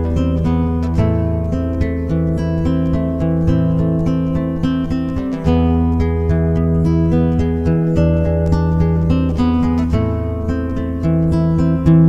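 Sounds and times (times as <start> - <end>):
fingerstyle acoustic guitar: 0.0 - 12.0.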